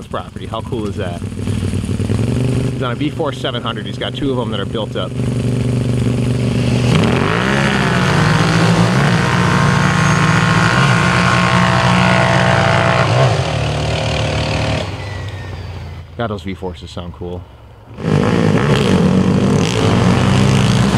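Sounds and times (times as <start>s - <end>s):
quad engines accelerating: 0.0s - 20.9s.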